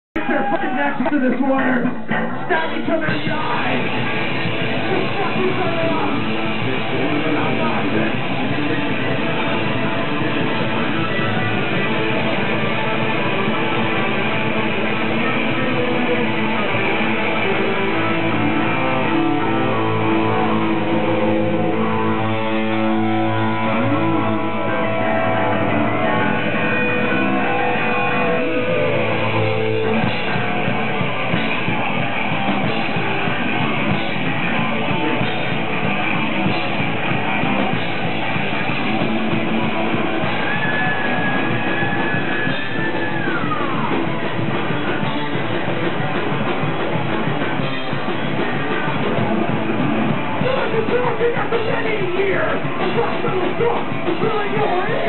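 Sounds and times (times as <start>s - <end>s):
metal band playing live: 0.2s - 55.0s.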